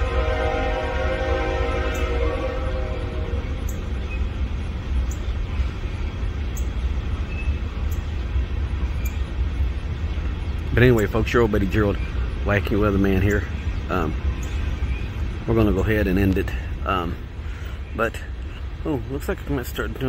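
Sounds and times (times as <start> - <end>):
train low rumble: 0.0 - 20.0.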